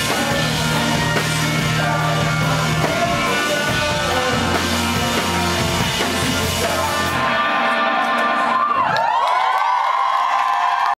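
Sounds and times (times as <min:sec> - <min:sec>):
audience cheering and screaming: 0:07.3 - 0:10.9.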